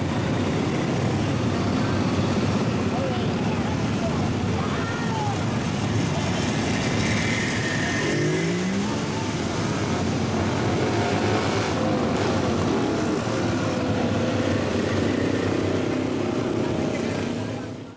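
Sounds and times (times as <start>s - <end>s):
motorcycle engines running: 0.0s - 17.9s
motorcycle engine revving: 5.6s - 17.8s.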